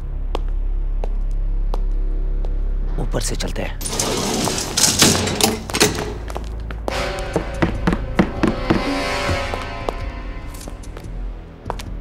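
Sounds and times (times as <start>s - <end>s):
film background score: 0.0s - 12.0s.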